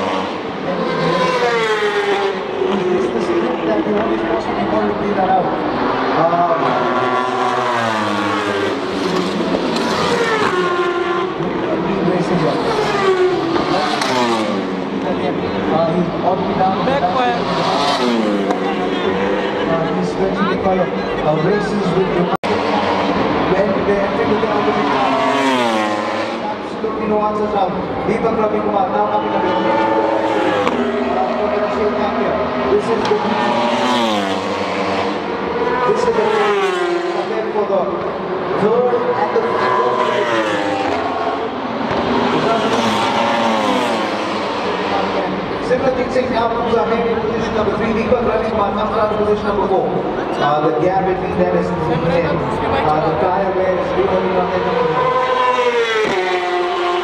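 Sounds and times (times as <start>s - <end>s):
racing engines passing at high revs: 0.0s - 57.0s.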